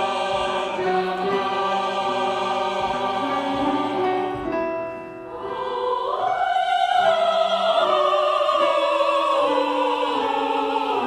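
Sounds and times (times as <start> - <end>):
mixed choir singing: 0.0 - 11.0.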